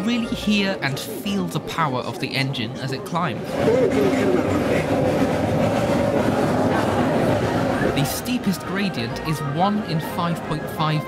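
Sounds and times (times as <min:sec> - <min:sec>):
steam locomotive working hard: 0:03.4 - 0:08.8.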